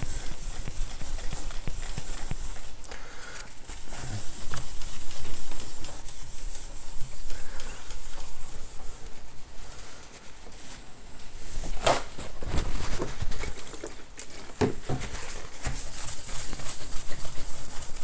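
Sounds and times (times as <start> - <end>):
cloth wiping a screen: 0.0 - 2.8, 3.5 - 13.5, 15.0 - 18.0.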